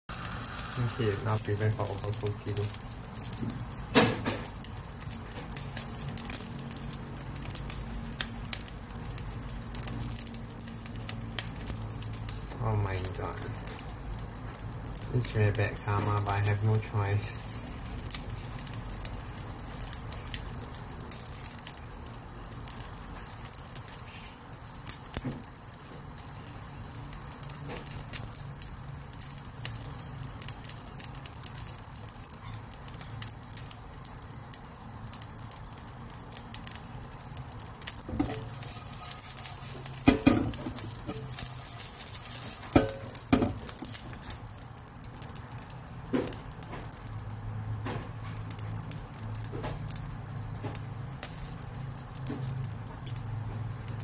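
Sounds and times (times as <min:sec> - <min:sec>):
mealworms sizzling in a pan: 0:00.0 - 0:54.0
crackles and pops: 0:00.1 - 0:54.0.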